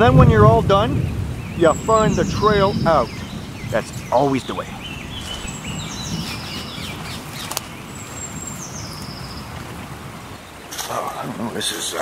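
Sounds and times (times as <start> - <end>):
birds singing: 0.0 - 12.0.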